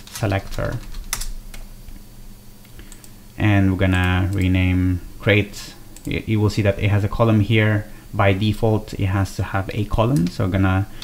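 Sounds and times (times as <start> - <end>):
computer keyboard keystrokes: 0.0 - 1.6.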